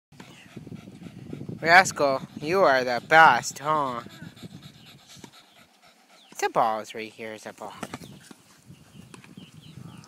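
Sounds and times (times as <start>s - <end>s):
dog panting softly: 0.2s - 7.1s.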